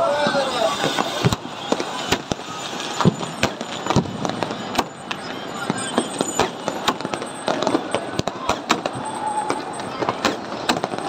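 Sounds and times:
fireworks bangs and pops: 0.0s - 11.0s.

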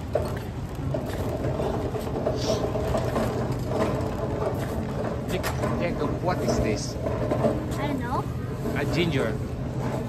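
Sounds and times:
metal shopping cart rattling: 0.0s - 10.0s.

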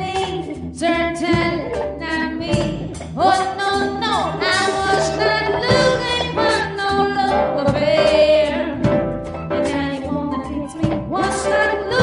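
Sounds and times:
woman singing: 0.0s - 8.9s, 9.6s - 12.0s.

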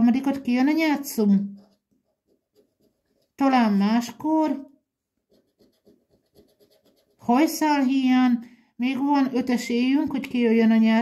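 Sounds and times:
coin scratching lottery ticket: 5.3s - 7.6s.

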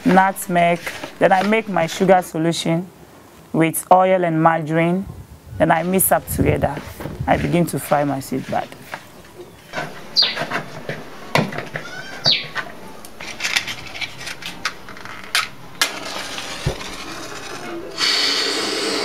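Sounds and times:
hands kneading dough in bowl: 5.1s - 9.1s.

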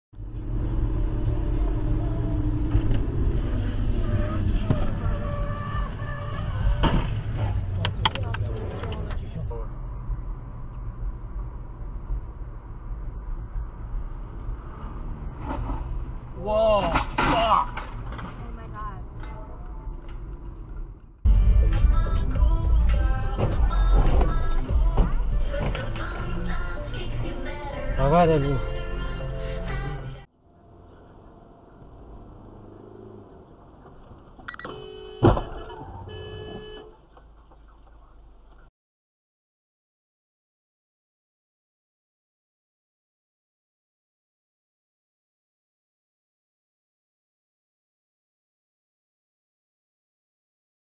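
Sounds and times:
car interior engine and road noise: 0.2s - 16.8s, 17.8s - 38.7s
horn-like tone: 34.5s - 37.0s.

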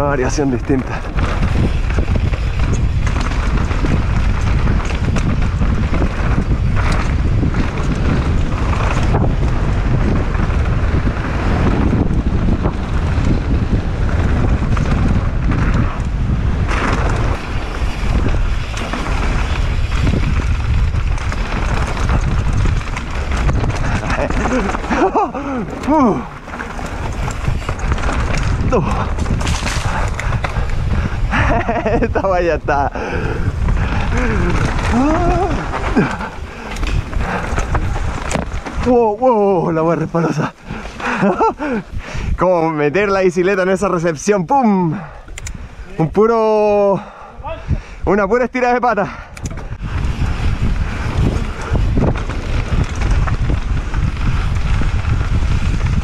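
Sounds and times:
wind on microphone: 0.0s - 43.3s, 45.0s - 46.2s, 46.8s - 48.2s, 49.1s - 56.0s
bike rattling over bumps: 0.0s - 56.0s
bike tyres rolling on dirt: 0.0s - 56.0s.

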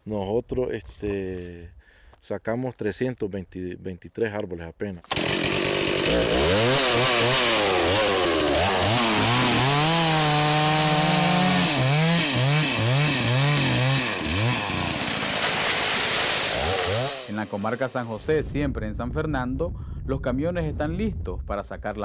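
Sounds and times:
two-stroke chainsaw revving: 5.1s - 18.1s.

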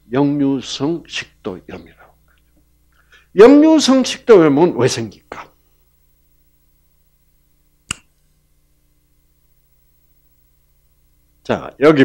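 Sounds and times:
sharp click: 7.9s - 8.1s.

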